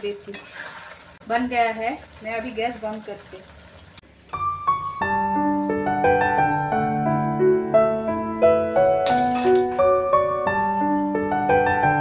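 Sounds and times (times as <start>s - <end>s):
gentle piano music: 4.3s - 12.0s.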